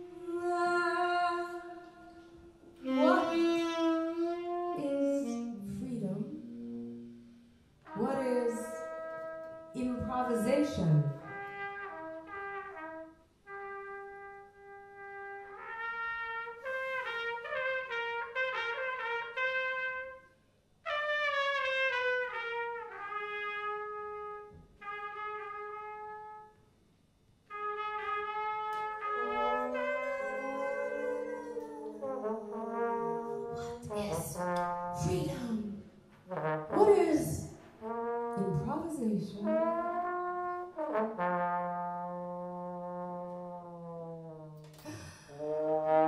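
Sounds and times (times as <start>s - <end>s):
big band horn section playing: 2.0s - 5.8s, 11.2s - 20.2s, 20.8s - 26.6s, 27.5s - 35.4s, 36.3s - 46.0s.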